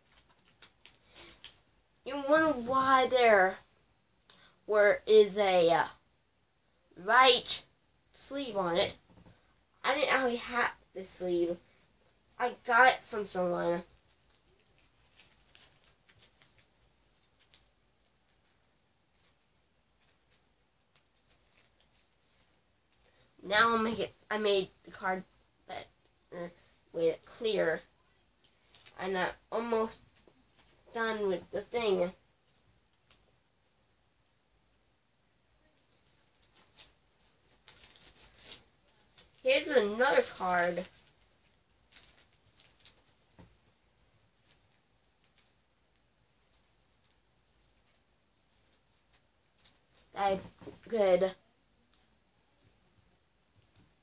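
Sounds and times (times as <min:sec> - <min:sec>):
card rustling into plastic sleeve: 0:00.0 - 0:01.6, 0:14.1 - 0:17.7, 0:18.3 - 0:23.1, 0:28.4 - 0:29.0, 0:35.9 - 0:43.5.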